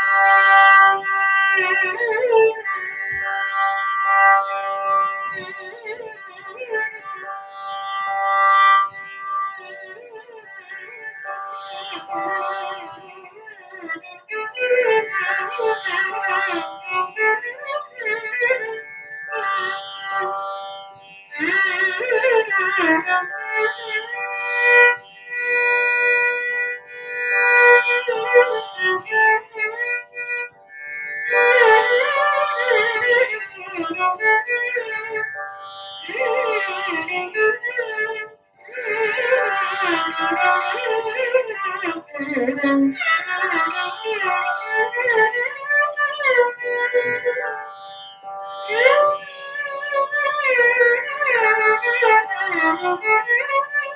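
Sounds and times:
violin: 0.0 - 53.9.

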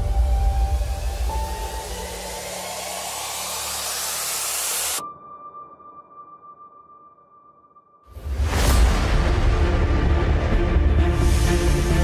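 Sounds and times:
rushing hiss of cleaning equipment: 0.0 - 5.0.

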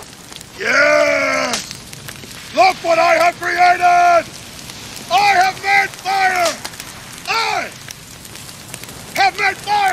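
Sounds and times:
fire crackling: 0.0 - 9.9
man shouting triumphantly: 0.6 - 1.6, 2.6 - 4.2, 5.1 - 6.6, 7.3 - 7.8, 9.2 - 9.9.

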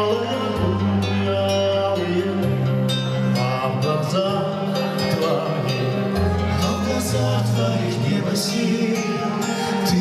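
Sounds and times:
keyboard song with bass: 0.0 - 10.0
man singing into microphone: 0.0 - 10.0.

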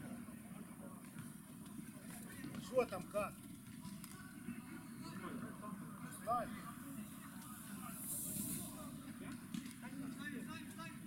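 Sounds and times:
short high hiss: 7.8 - 8.9.

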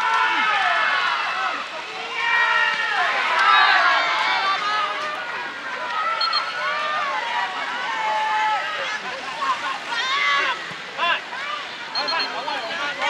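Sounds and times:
voices shouting and calling out: 0.0 - 13.0.

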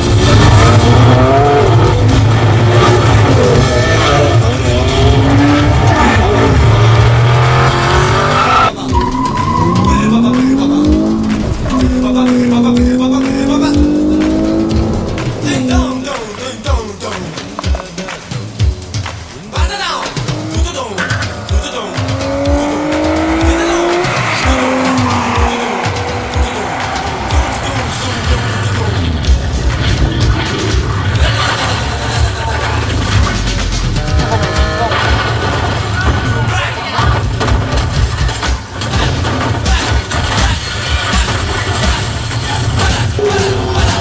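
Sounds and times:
soundtrack music with heavy bass: 0.0 - 44.0.

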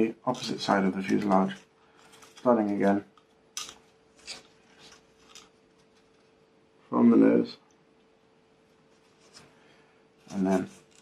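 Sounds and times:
balsa wood scraping and clicking: 0.3 - 6.3, 10.2 - 11.0.

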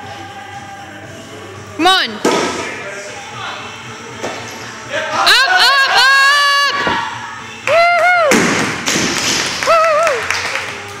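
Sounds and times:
onlookers whooping: 9.6 - 10.3.

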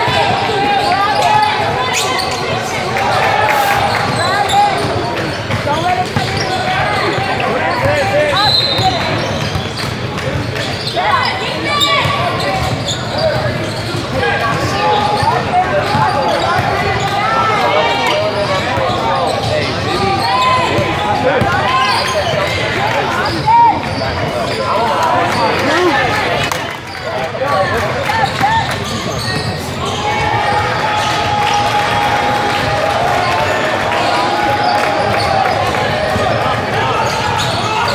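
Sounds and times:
voices calling out: 0.0 - 9.7.

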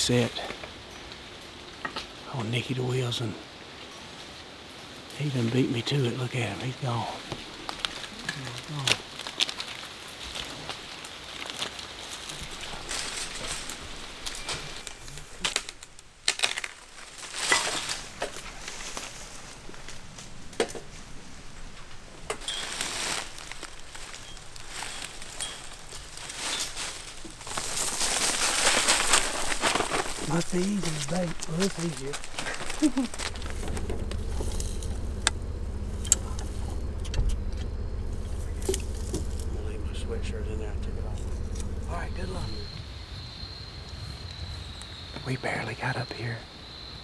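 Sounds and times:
rustling: 7.0 - 42.8
sharp clicks and knocks: 31.3 - 39.5.

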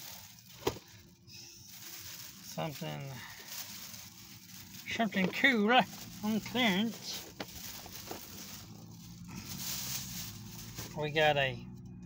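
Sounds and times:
plastic bag rustling: 0.0 - 11.4
steady low hum: 0.0 - 12.0.

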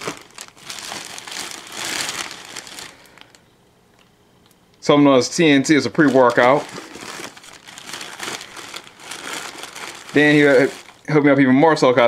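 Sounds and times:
bags rustling and crinkling: 0.0 - 3.4, 5.6 - 11.2.

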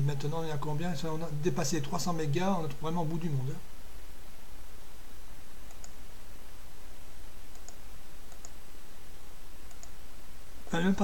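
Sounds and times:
steady low hum: 0.0 - 11.0
computer mouse clicks: 5.6 - 6.0, 7.5 - 8.6, 9.6 - 10.0.

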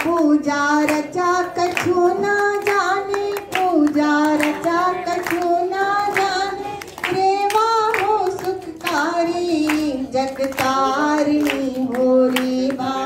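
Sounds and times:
woman singing through loudspeaker: 0.0 - 13.0.

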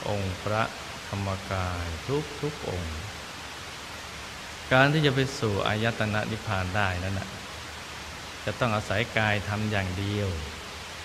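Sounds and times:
person speaking calmly: 0.0 - 3.3, 4.7 - 7.5, 8.4 - 10.7
recording hiss: 0.0 - 11.0.

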